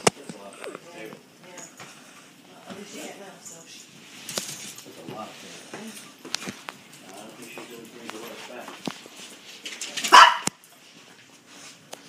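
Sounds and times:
small dog barking: 10.0 - 10.6.

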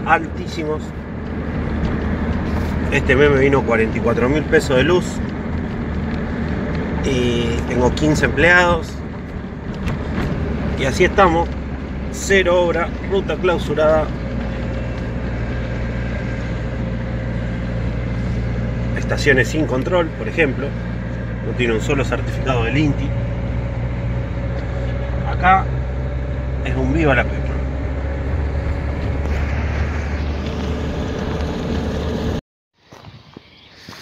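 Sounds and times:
car engine and tyre hum: 0.0 - 34.0.

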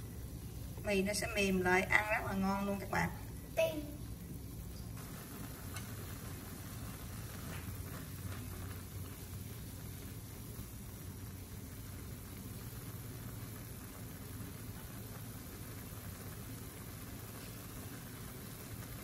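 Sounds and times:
water boiling in a metal pan: 0.0 - 19.0.

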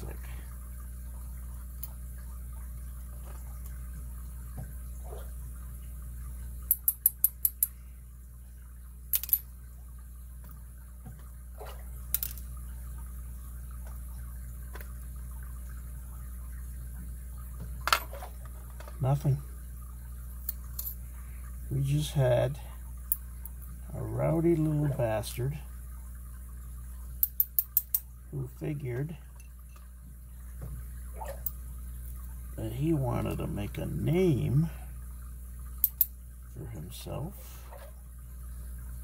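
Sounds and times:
steady low hum: 0.0 - 39.0
small metal parts clicking: 6.7 - 7.8, 9.1 - 9.5, 12.1 - 12.5.

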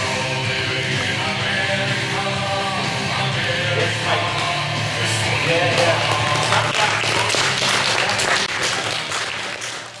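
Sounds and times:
background music: 0.0 - 10.0
audience applauding: 5.7 - 10.0.

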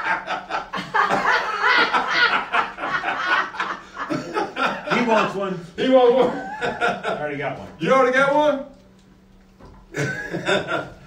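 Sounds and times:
person chuckling: 9.9 - 11.0.

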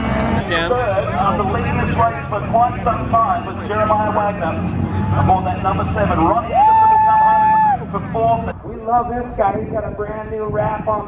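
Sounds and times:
vehicle engines running: 0.0 - 11.0
announcer calling over loudspeakers: 0.4 - 6.8.

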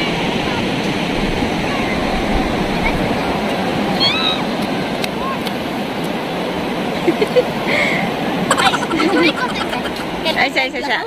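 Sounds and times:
people talking and laughing: 6.8 - 11.0.

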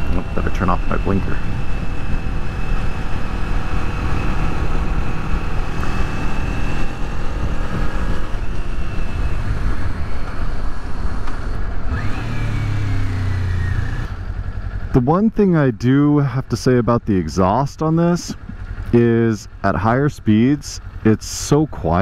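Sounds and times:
thin high-pitched whine: 0.0 - 3.2
motorcycle engine running: 0.0 - 22.0
wind and road noise: 0.0 - 22.0.

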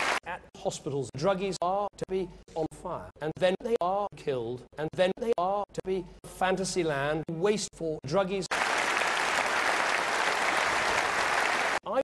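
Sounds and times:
audience applause: 0.0 - 0.2, 8.5 - 11.8.

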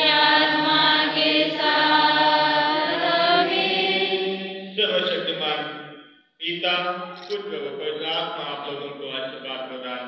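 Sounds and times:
voices chanting prayer: 0.0 - 10.0.

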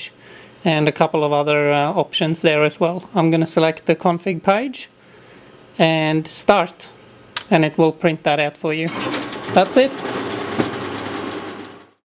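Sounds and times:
copier mechanical whirr: 7.2 - 12.0.

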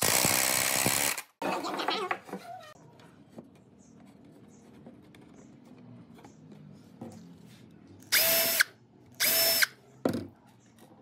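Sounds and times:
power drill whine: 8.1 - 8.6, 9.2 - 9.7.

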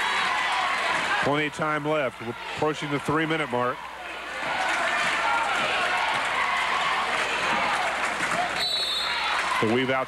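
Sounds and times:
crowd shouting and cheering: 0.0 - 10.0.

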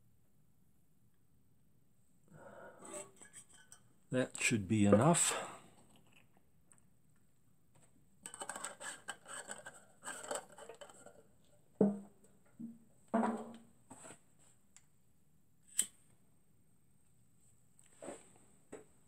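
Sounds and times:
small metal clicks and scrapes: 8.2 - 11.2.

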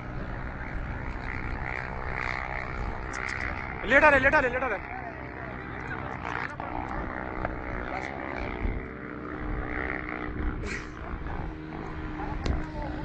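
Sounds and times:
faint voices: 0.0 - 13.0
vehicle engine running hard: 0.0 - 13.0.

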